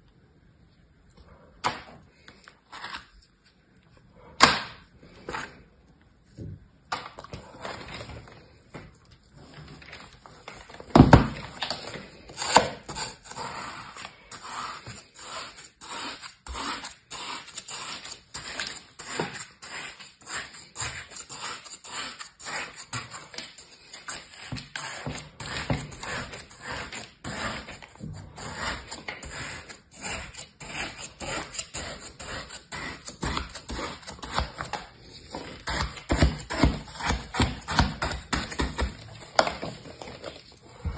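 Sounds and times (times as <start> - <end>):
toy shovel scraping kinetic sand: 12.4 - 34.1.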